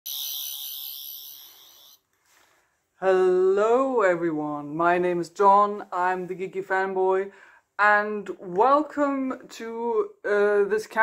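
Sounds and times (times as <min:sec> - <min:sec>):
high ringing sound effect: 0:00.0 - 0:02.0.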